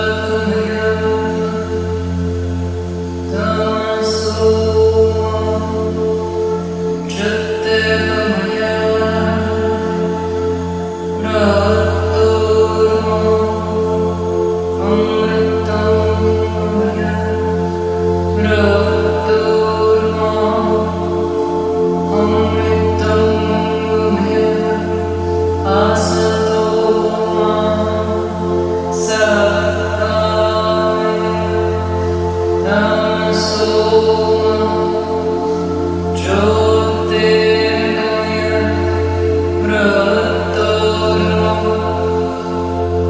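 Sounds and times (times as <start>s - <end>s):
chanted mantra: 0.0s - 43.0s
singing bowls ringing: 0.0s - 43.0s.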